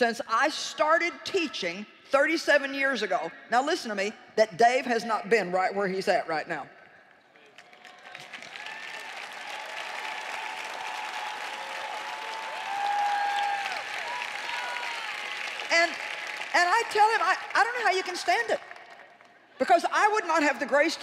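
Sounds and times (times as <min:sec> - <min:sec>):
large audience applauding: 0:07.4 - 0:19.4
voices cheering: 0:07.7 - 0:16.5.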